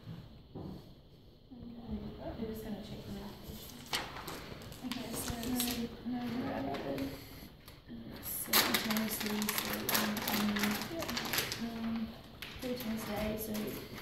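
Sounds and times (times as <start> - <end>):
rustling and handling noise: 0.0 - 14.0.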